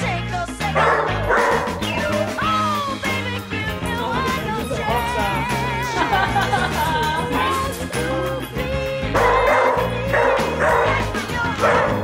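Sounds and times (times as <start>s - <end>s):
recorded music: 0.0s - 12.0s
dog barking: 0.8s - 1.8s, 9.2s - 12.0s.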